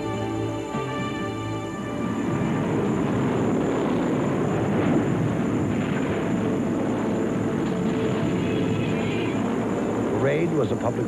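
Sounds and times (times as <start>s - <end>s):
propeller aircraft engines droning: 0.0s - 11.0s.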